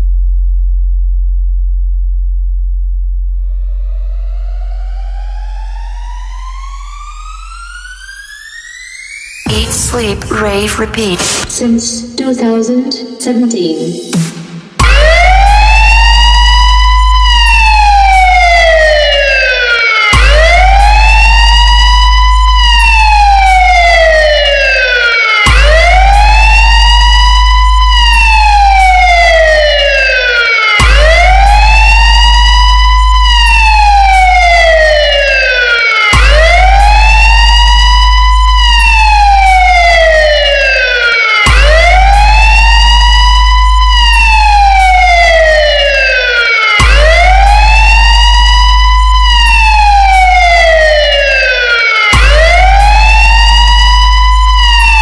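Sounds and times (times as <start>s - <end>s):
deep bass tone: 0.0s - 7.8s, 14.2s - 19.6s, 20.2s - 24.8s, 25.5s - 30.2s, 30.8s - 35.6s, 36.2s - 40.8s, 41.5s - 46.2s, 46.8s - 51.6s, 52.2s - 55.0s
siren-like electronic wail: 3.3s - 10.2s, 14.0s - 55.0s.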